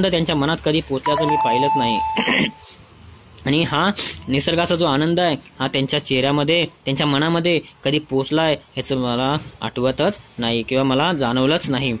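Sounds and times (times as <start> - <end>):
person reading aloud: 0.0 - 2.6.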